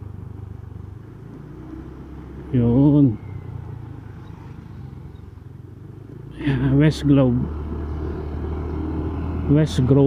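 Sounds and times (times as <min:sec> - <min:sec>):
motorcycle engine cruising: 0:00.0 - 0:10.0.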